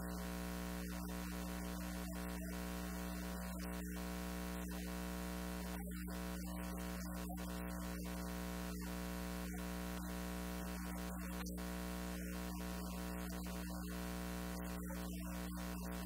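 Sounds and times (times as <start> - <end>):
mains hum: 0.0 - 16.0.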